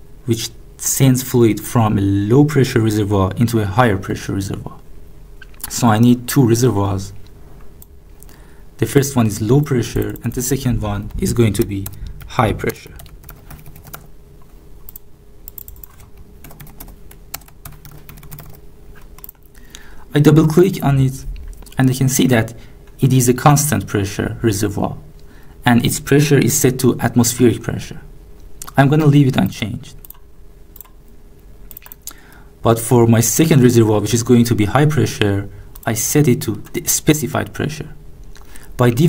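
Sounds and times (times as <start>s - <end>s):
low steady room hum: 0.0s - 39.0s
keyboard typing clicks: 10.0s - 14.1s, 14.9s - 19.5s, 30.0s - 30.2s, 30.8s - 31.0s, 31.7s - 32.1s
faint computer mouse clicks: 31.7s - 32.2s.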